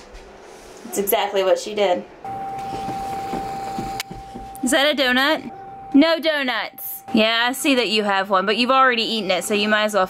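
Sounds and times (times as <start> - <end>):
steady tone: 2.2 - 10.0.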